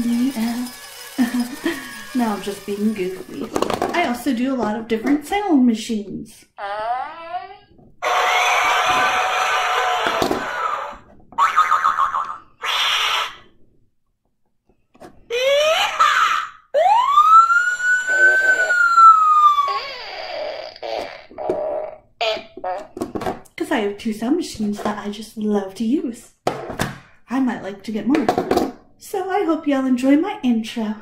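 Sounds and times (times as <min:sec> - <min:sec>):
toy sound effects machine: 0:00.0 - 0:04.2, 0:08.0 - 0:13.5, 0:16.8 - 0:20.4
whistle-like tone rising and falling: 0:16.8 - 0:19.8.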